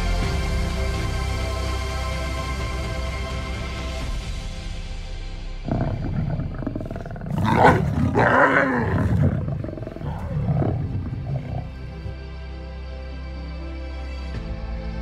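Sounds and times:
background music: 0.0 - 15.0
lions growling and snarling: 5.6 - 12.4.

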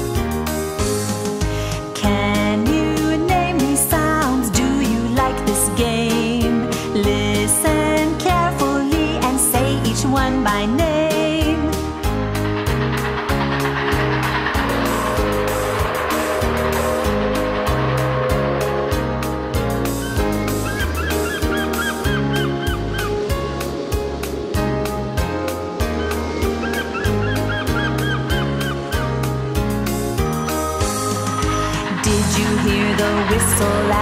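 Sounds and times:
instrumental children's song backing: 0.0 - 15.7, 19.5 - 34.0
rushing noise: 11.7 - 34.0
geese honking: 19.8 - 23.3, 25.9 - 29.0.

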